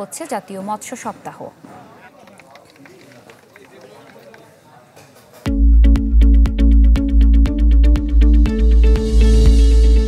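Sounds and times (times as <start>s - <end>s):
people chatting: 0.0s - 5.3s.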